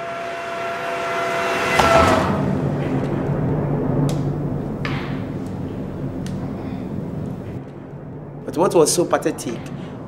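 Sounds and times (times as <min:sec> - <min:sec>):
vehicle engine hum approaching: 0:00.9 - 0:10.0.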